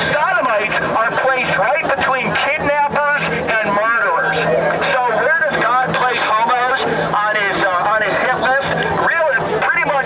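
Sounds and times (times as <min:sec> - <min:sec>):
man speaking through loudspeaker: 0:00.0 - 0:10.0
steady low hum: 0:00.0 - 0:10.0.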